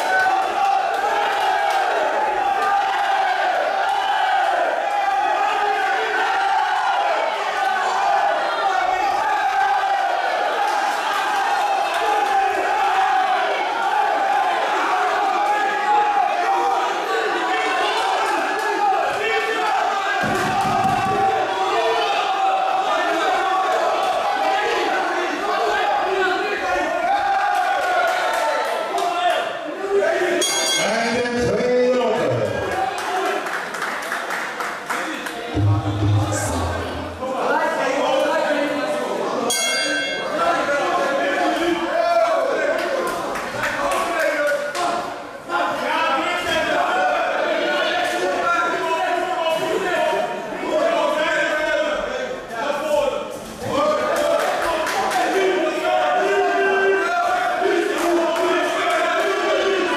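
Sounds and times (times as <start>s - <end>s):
crowd shouting: 0.0s - 31.6s, 35.1s - 59.9s.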